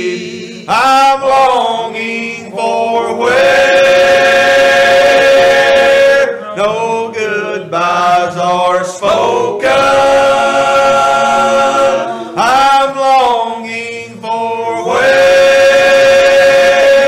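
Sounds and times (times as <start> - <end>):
male group singing gospel: 0.0 - 17.0.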